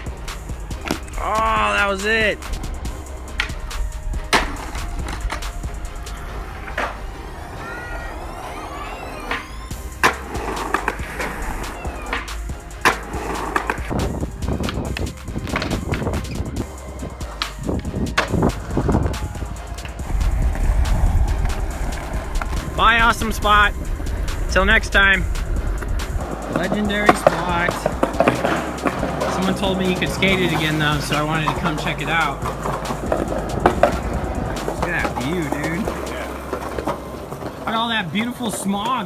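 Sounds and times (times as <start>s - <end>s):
skateboard wheels rolling: 0.0s - 39.0s
skateboard tail pops clacking: 0.8s - 1.2s, 4.3s - 5.6s, 9.2s - 13.9s, 14.6s - 16.4s, 17.4s - 20.0s.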